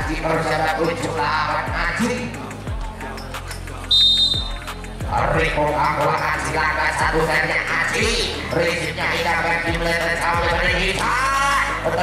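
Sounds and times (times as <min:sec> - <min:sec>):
background music: 0:00.0 - 0:12.0
referee's whistle blast: 0:03.9 - 0:04.6.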